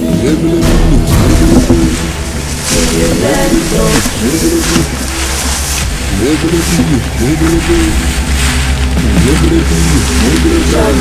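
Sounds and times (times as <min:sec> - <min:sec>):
steady low drone: 0:00.0 - 0:11.0
wordless voice chanting: 0:00.0 - 0:11.0.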